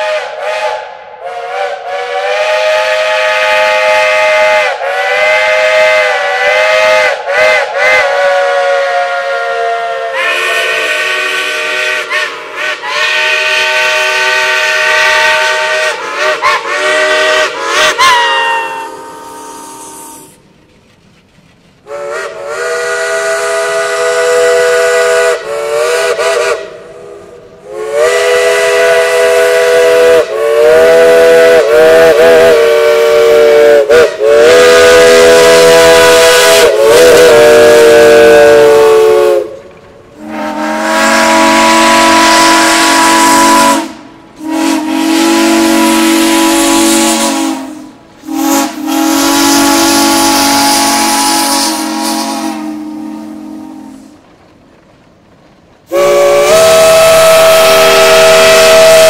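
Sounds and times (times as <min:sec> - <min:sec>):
steam locomotive chime whistle: 0:00.0 - 0:20.4, 0:21.9 - 0:39.6, 0:40.2 - 0:54.2, 0:55.9 - 0:59.0
deeper chime whistle blasts: 0:18.1 - 0:20.4.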